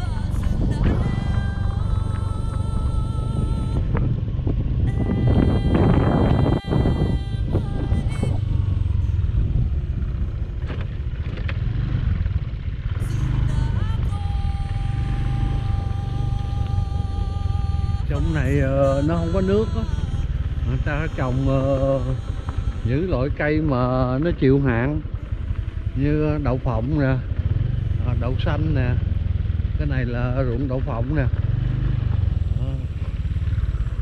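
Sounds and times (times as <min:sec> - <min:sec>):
motorcycle engine rumble: 0:00.0 - 0:34.0
wind: 0:00.0 - 0:34.0.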